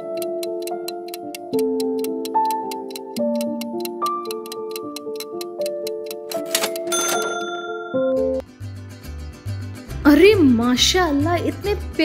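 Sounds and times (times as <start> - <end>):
clock ticking: 0.0 - 7.4
background music of held notes: 0.0 - 12.0.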